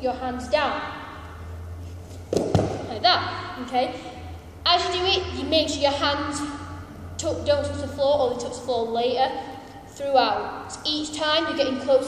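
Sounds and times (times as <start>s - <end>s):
feet thudding on gym mat: 2.3s - 2.8s.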